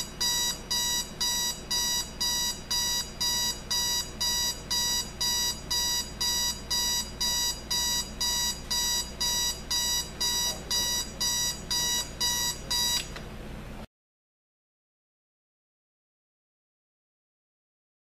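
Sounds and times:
alarm clock beeping: 0.0 - 13.0.

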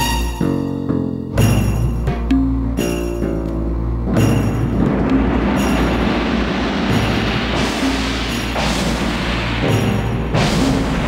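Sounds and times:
low hum: 1.4 - 11.0
loud rumbling noise: 3.7 - 11.0.

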